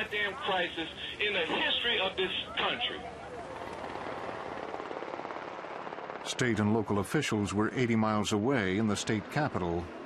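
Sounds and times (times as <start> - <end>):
helicopter rotors beating: 0.0 - 10.0.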